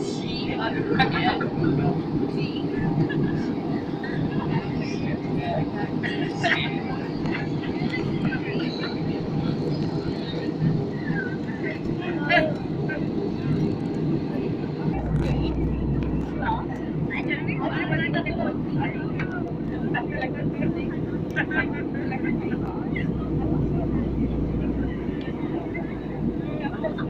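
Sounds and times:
airliner cabin roar: 0.0 - 27.0
faint passenger voices: 0.0 - 27.0
deep rumble: 13.5 - 27.0.

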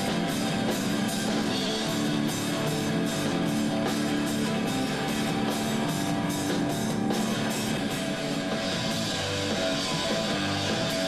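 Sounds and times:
drum kit: 0.0 - 11.0
loud electric guitars: 0.0 - 11.0
rock band playing live: 0.0 - 11.0.

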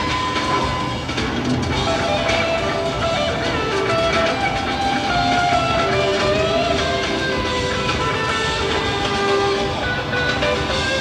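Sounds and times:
bass guitar: 0.0 - 11.0
drums: 0.0 - 11.0
live rock band playing: 0.0 - 11.0.

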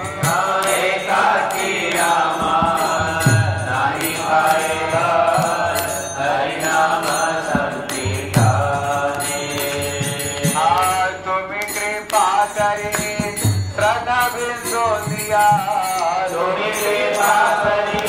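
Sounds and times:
devotional singing: 0.0 - 18.0
hand cymbals ticking: 0.0 - 18.0.

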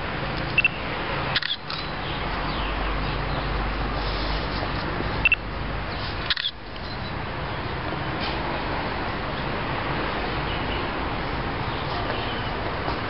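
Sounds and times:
outdoor background noise: 0.0 - 13.0
camera shutters clicking: 1.4 - 1.9, 6.3 - 6.6.

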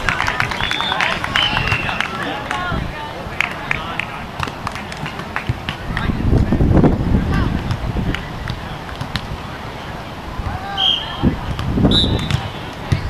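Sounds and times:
sharp claps and clicks: 0.0 - 2.6, 3.4 - 6.5
players calling out: 0.0 - 6.2.

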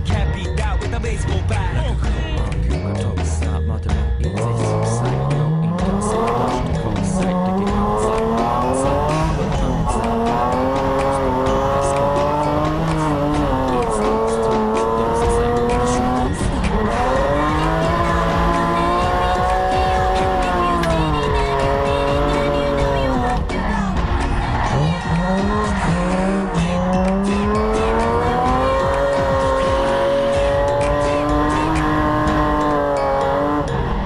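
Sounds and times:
car engine at high revs: 4.3 - 34.0.

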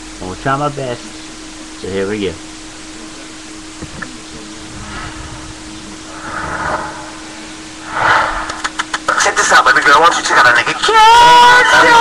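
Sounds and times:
electrical hum and hiss: 0.0 - 12.0
loud burst of noise: 4.4 - 9.7.

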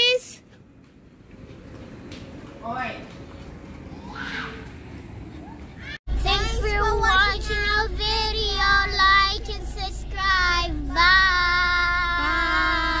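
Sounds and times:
low hum of car cabin: 6.1 - 13.0
children singing together: 6.2 - 13.0.

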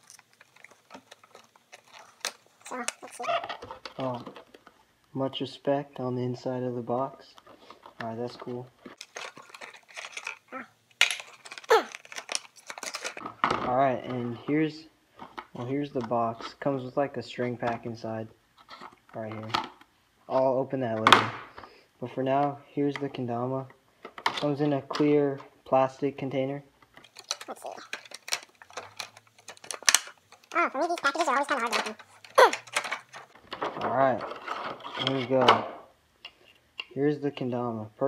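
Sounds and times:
cardboard packaging rustling: 0.0 - 4.8, 7.4 - 13.4, 27.0 - 33.7.

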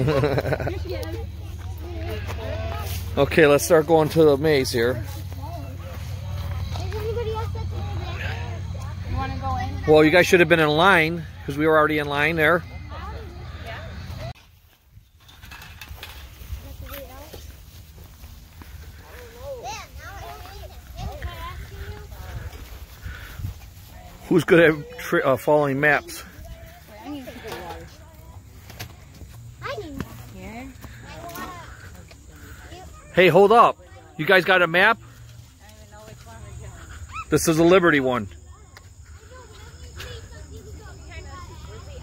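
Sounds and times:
distant voices talking: 0.0 - 14.4
faint indistinct voices: 5.0 - 9.9.

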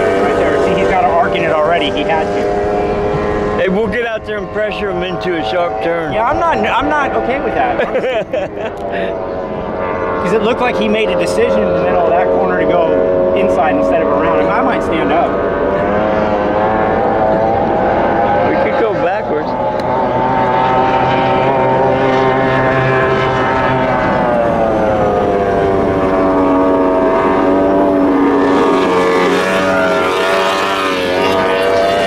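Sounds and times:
motorboat engine running: 0.0 - 32.0.

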